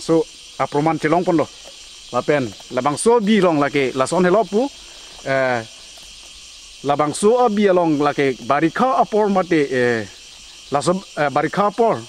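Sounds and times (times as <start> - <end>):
man talking: 0.0 - 5.7, 6.8 - 12.0
insects buzzing: 0.0 - 12.0.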